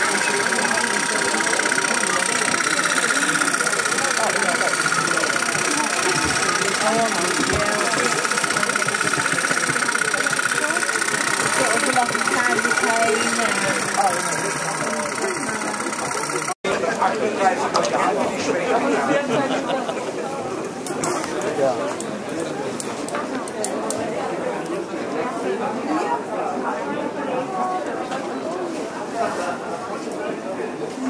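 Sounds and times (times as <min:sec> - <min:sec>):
toy steam engines clattering: 0:00.0 - 0:16.6
people talking: 0:00.0 - 0:31.0.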